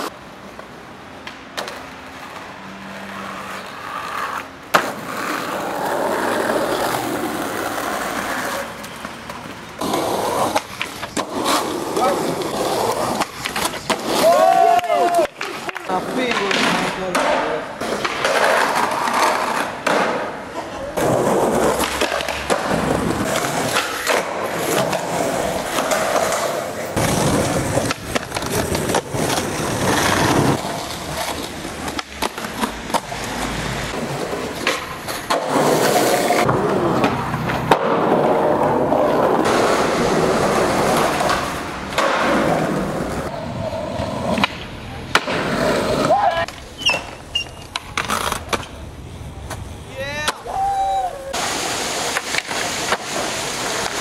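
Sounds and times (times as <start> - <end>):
skateboard clacks: 0.0 - 2.5, 3.1 - 54.0
skateboard wheels rolling on concrete: 0.0 - 54.0.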